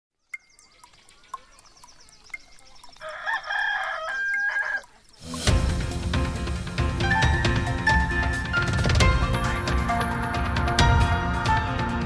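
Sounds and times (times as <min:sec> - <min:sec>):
small birds chirping: 0:00.1 - 0:06.2
clock ticking fast: 0:00.4 - 0:06.6
rooster crowing: 0:02.9 - 0:05.0.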